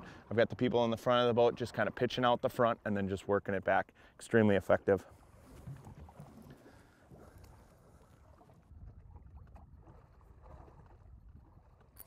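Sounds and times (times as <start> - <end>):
water slapping the hull: 4.6 - 12.0.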